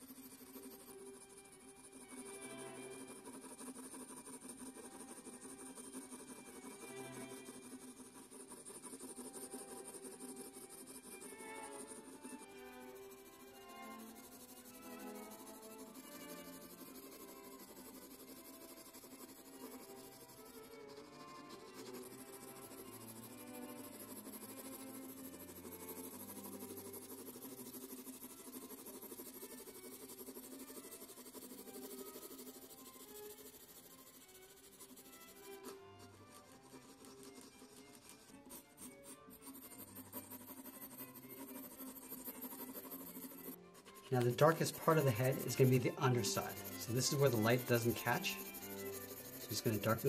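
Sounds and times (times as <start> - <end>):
pencil scratching paper: 0.0 - 50.0
soft background music: 0.0 - 50.0.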